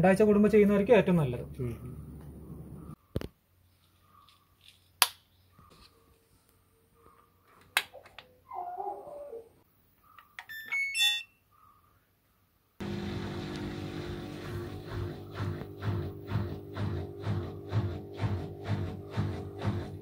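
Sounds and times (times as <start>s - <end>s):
washing machine electronic beeps: 10.4s - 11.4s
background music with steady beat: 14.6s - 20.0s.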